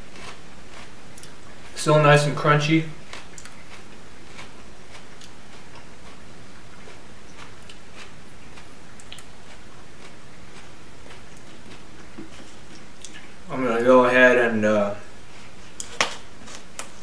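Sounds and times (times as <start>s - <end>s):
crisp chewing crunches: 0.0s - 1.9s, 2.9s - 13.4s.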